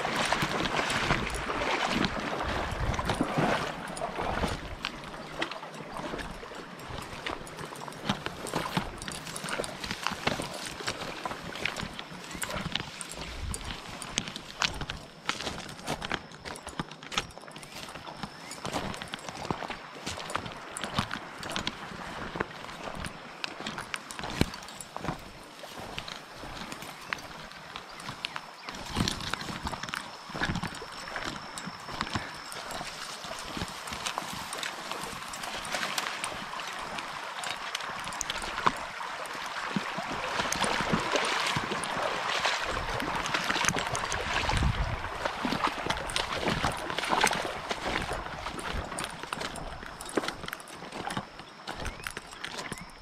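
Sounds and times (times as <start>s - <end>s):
footsteps through dry grass: 0.0s - 53.0s
dry grass crackling and brushing: 17.6s - 38.8s.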